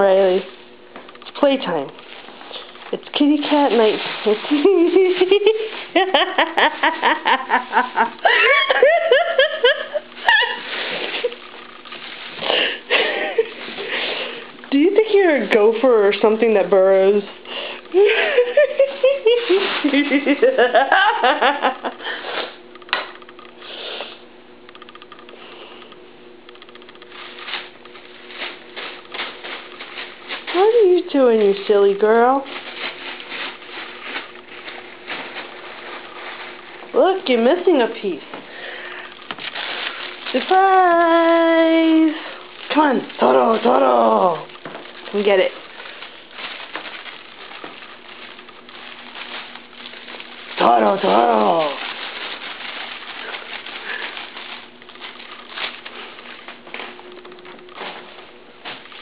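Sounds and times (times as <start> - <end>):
faint steady hum: 0.0 - 59.0
cat scratching and digging: 1.4 - 7.0, 10.0 - 17.4, 18.4 - 20.5, 27.0 - 38.1, 39.3 - 59.0.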